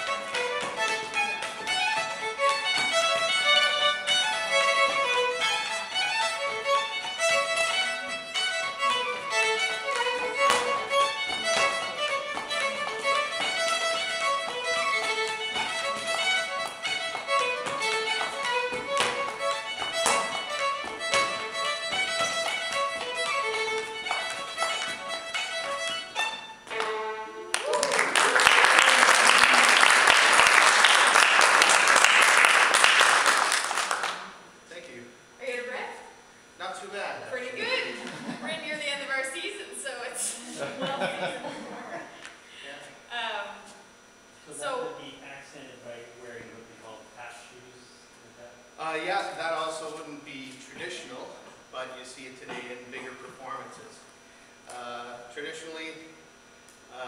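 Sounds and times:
shoes tapping on floor: 0:00.0 - 0:27.1
solo fiddle tune: 0:00.0 - 0:27.5
audience applause: 0:26.8 - 0:34.4.

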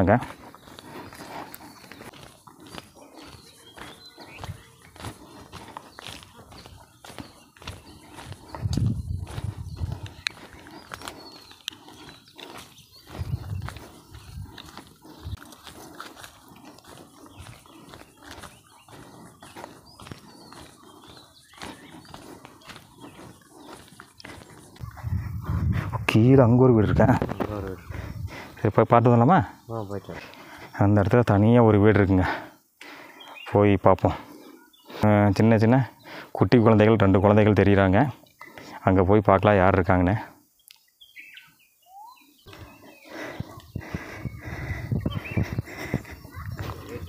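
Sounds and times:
footsteps crunching on forest path: 0:00.0 - 0:47.0
faint bird chirps: 0:32.1 - 0:47.0.

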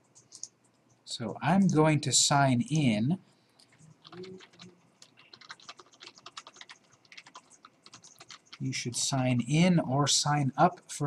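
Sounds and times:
keyboard typing: 0:00.0 - 0:00.9, 0:03.6 - 0:09.4.

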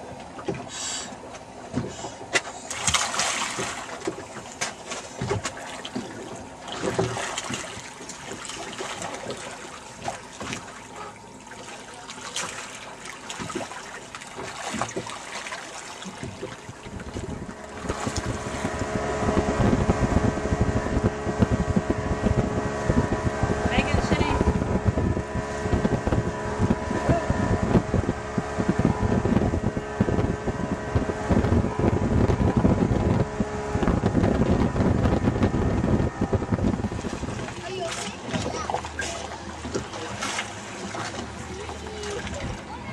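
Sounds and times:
outboard engine drone: 0:00.0 - 0:42.9
water rushing past hull: 0:00.0 - 0:42.9
water splashing and lapping: 0:00.0 - 0:42.9
wind on microphone: 0:16.1 - 0:42.9.

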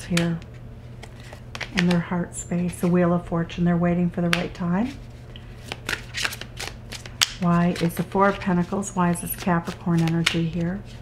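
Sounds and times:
cards being shuffled: 0:00.1 - 0:03.0, 0:04.3 - 0:11.0.

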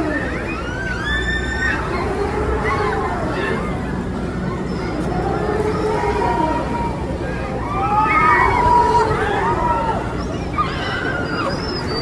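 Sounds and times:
riders screaming: 0:00.0 - 0:12.0.

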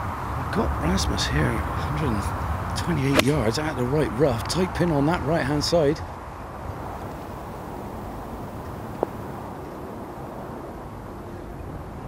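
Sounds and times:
low outdoor background noise: 0:00.0 - 0:12.0.

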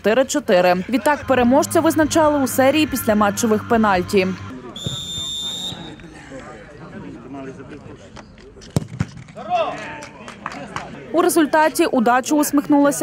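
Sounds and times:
background voices talking: 0:00.0 - 0:08.8
referee's whistle: 0:04.7 - 0:06.0.

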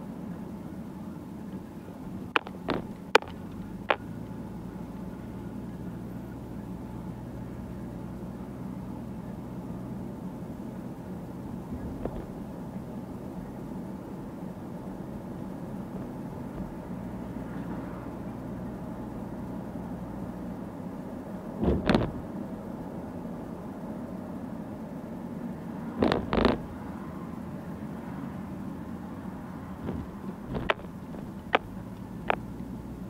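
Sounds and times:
engine and tyre hum: 0:00.0 - 0:33.0
loud double knock or creak: 0:21.6 - 0:22.2, 0:26.0 - 0:26.7.

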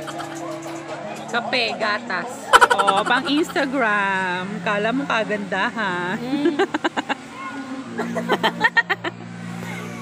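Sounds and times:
steady low hum: 0:00.0 - 0:10.0
women laughing: 0:02.5 - 0:03.9, 0:06.2 - 0:07.3, 0:08.0 - 0:09.2.

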